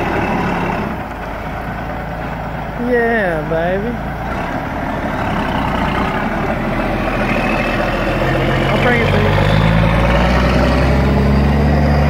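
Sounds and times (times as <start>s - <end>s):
diesel truck engine running: 0.0s - 12.0s.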